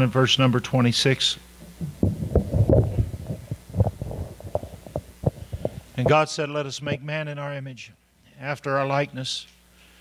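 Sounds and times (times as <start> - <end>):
microphone handling thumps: 1.6 - 6.3.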